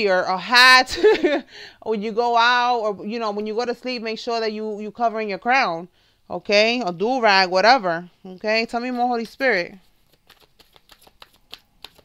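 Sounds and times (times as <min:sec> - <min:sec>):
cards being shuffled: 0:08.8 - 0:12.0.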